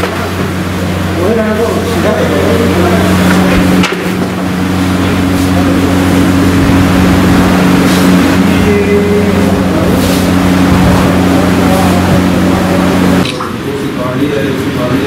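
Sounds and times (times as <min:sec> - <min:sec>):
motor running with low hum: 0:00.0 - 0:15.0.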